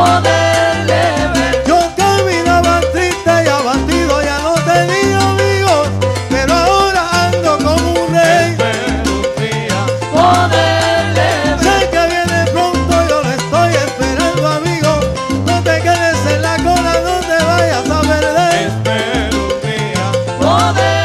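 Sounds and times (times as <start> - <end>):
bass line: 0.0 - 21.0
congas and timbales: 0.0 - 21.0
salsa band playing: 0.0 - 21.0.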